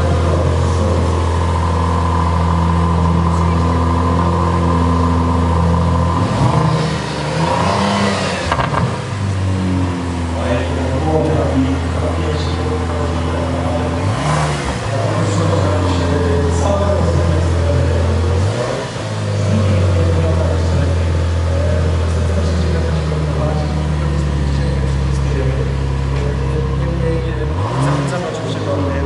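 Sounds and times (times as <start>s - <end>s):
car engine idling and revving: 0.0s - 29.0s.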